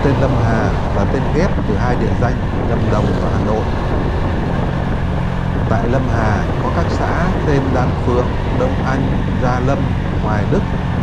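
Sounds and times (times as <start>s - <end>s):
motorcycle engine running steadily: 0.0s - 11.0s.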